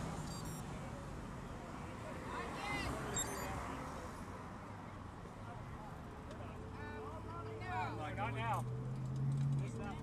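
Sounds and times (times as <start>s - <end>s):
low traffic hum: 0.0s - 10.0s.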